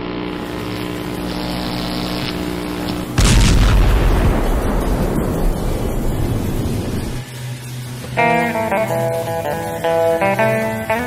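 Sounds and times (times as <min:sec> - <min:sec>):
steady low drone: 0:00.0 - 0:11.0
loud explosion boom: 0:03.2 - 0:07.2.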